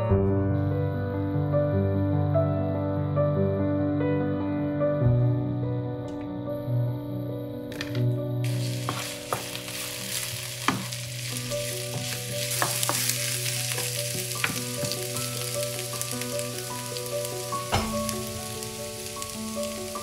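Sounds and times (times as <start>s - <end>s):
food sizzling in a frying pan: 8.4s - 20.0s.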